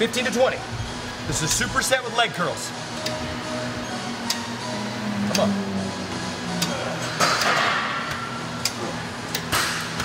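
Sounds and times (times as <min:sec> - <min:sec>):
weight stack clicking and clanking: 0:06.6 - 0:10.0.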